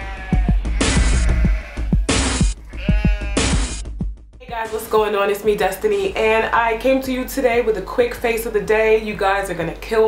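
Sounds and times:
intro music with heavy bass: 0.3 - 4.5.

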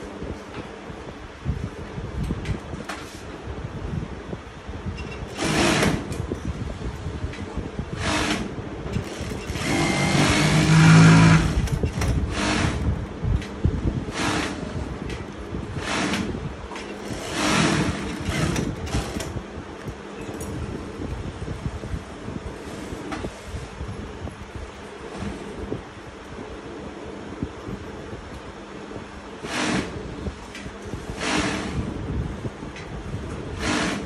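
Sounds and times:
sewing machine stitching: 5.2 - 6.2, 8.0 - 12.9, 14.1 - 15.2, 15.8 - 19.4, 29.4 - 30.0, 31.1 - 31.9, 33.6 - 34.0.

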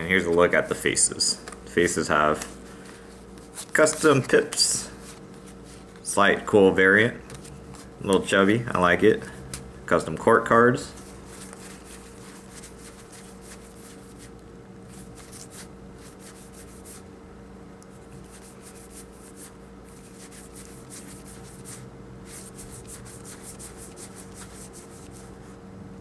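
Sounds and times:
playing cards sliding and rubbing: 0.2 - 6.4, 7.3 - 7.9, 10.9 - 17.1, 17.9 - 25.6.

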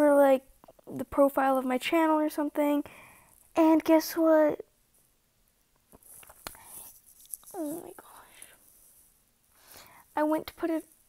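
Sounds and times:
person breathing: 2.8 - 3.4, 8.0 - 8.9, 9.5 - 10.2.

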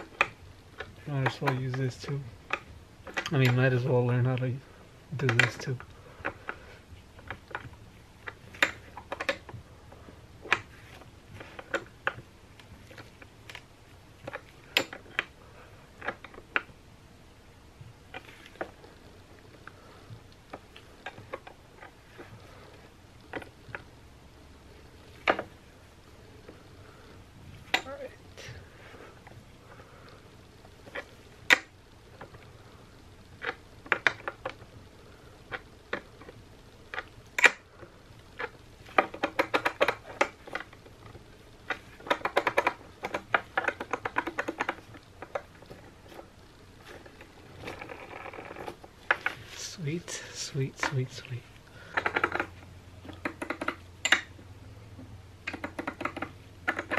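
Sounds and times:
small sharp metal clicks: 35.5 - 37.6, 51.8 - 54.4.

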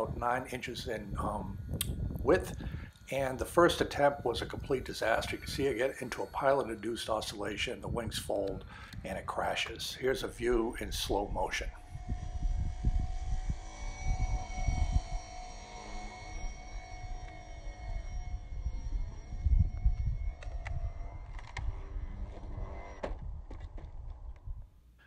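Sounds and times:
wind buffeting microphone: 0.0 - 15.6, 16.2 - 24.8
small electric motor whine: 0.0 - 24.8
sharp clicks: 20.3 - 21.8.

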